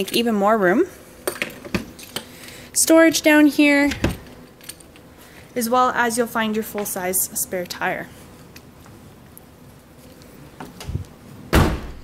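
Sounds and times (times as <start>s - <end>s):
liftgate slamming shut: 11.5s - 12.0s.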